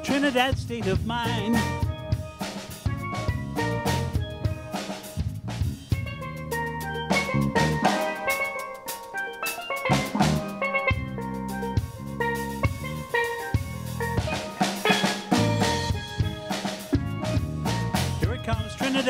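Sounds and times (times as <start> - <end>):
electric bass line: 0.0 - 8.9, 9.7 - 18.8
drum kit: 0.0 - 19.0
steel pan melody: 0.0 - 19.0.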